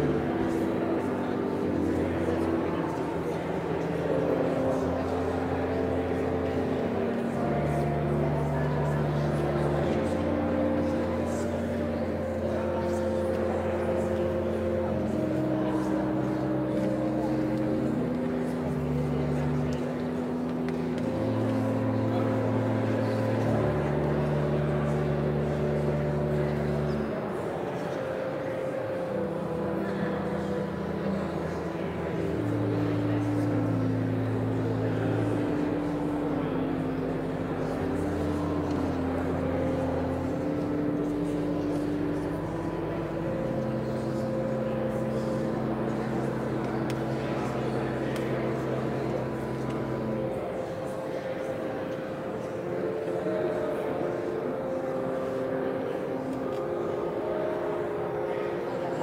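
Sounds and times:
organ playing sustained chords: 0.0 - 59.0.

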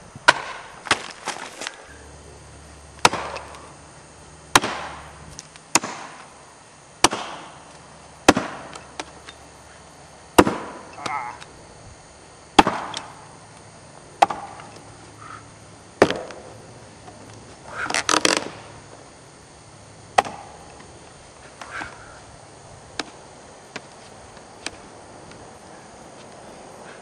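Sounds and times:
axe chopping wood block: 0.3 - 1.4, 3.0 - 3.4, 4.5 - 5.0, 5.7 - 6.2, 7.0 - 7.4, 8.3 - 8.8, 12.6 - 13.0, 14.2 - 14.5, 16.0 - 16.3, 20.2 - 20.4.

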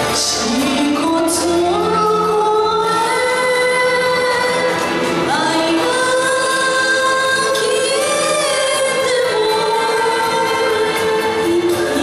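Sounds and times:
backing music: 0.0 - 12.0
woman singing into microphone: 0.0 - 12.0.

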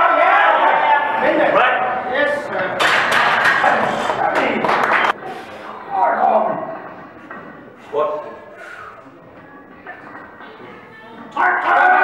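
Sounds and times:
people shouting: 0.0 - 1.8, 11.3 - 12.0.

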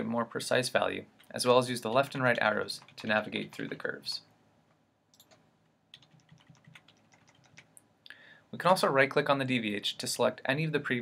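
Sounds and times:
faint keyboard keys clicking: 5.1 - 7.8.

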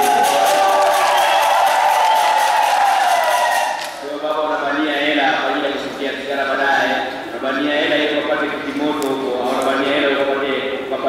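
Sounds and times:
hand clapping: 0.0 - 4.0.

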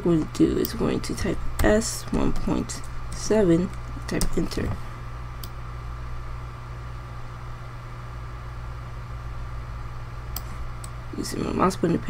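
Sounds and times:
faint whine and hiss: 0.0 - 12.0
steady low hum: 0.0 - 12.0.

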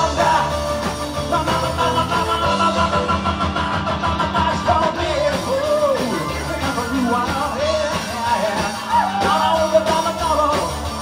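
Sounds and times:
bass guitar: 0.0 - 11.0
drums: 0.0 - 11.0
electric guitars: 0.0 - 11.0
person singing: 0.0 - 11.0.

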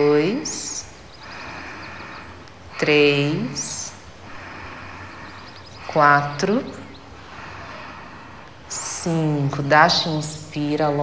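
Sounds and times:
woman speaking: 0.0 - 0.9, 2.8 - 4.0, 5.8 - 6.9, 8.7 - 11.0
birds chirping: 0.0 - 11.0.

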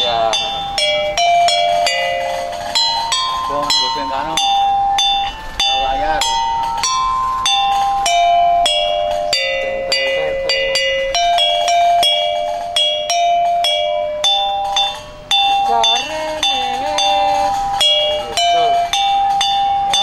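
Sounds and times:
bell-like percussion melody: 0.0 - 20.0
man's voice: 15.6 - 17.5.

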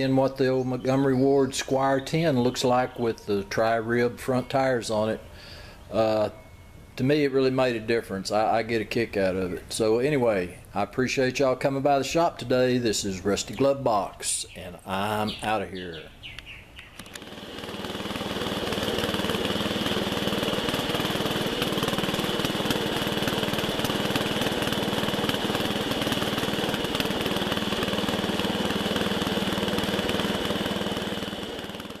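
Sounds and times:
small engine running: 17.0 - 32.0.

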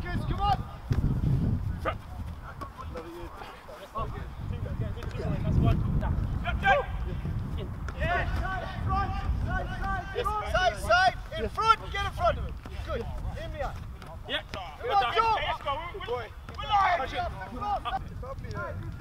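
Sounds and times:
footballers calling and shouting: 0.0 - 19.0.

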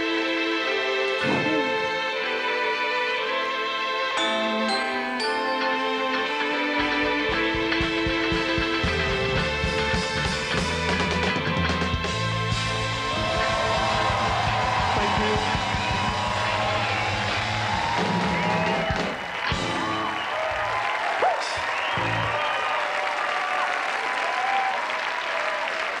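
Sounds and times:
live rock band playing: 4.2 - 20.8
audience cheering and applauding: 6.9 - 26.0.

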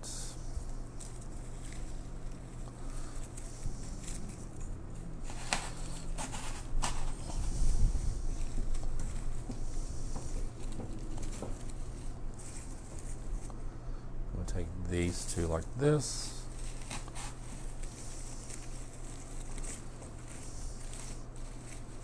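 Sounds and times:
artificial foliage rustling: 0.0 - 13.9, 14.8 - 22.0
low room hum: 0.0 - 22.0.

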